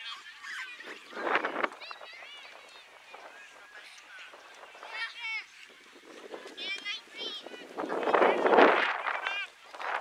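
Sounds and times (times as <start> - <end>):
children calling: 0.0 - 10.0.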